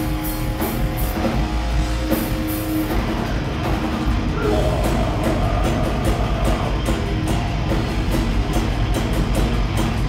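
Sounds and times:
hardcore band playing live: 0.0s - 10.0s.

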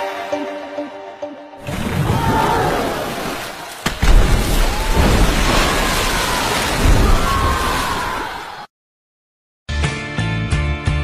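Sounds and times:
water splashing onto floor: 1.7s - 8.0s.

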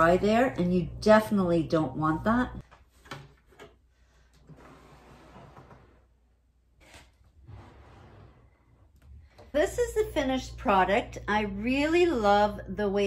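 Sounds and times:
wooden drawers sliding: 6.8s - 8.7s.

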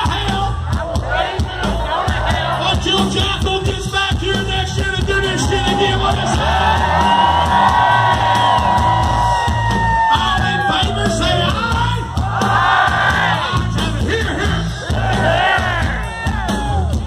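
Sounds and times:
crowd cheering: 0.0s - 17.0s
hard rock band playing live: 0.0s - 17.0s.

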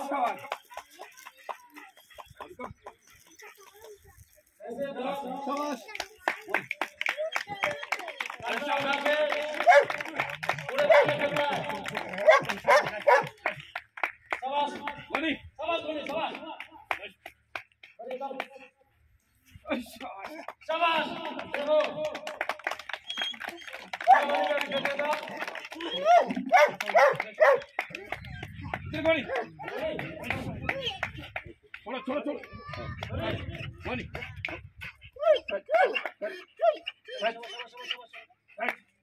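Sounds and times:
people's voices: 0.0s - 17.2s, 19.5s - 38.9s
sharp claps: 5.5s - 18.6s, 20.0s - 35.0s, 38.6s - 38.9s
dog barking: 9.6s - 9.9s, 12.2s - 13.3s, 26.5s - 27.7s, 35.3s - 36.8s.

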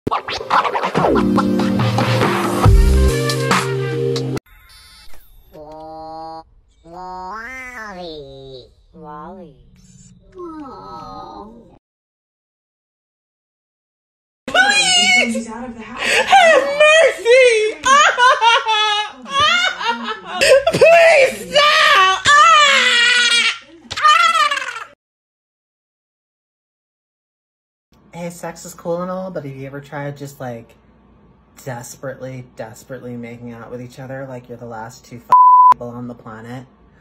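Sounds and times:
dj scratch sounds: 0.1s - 2.6s
high-pitched voice wailing: 14.5s - 15.4s.

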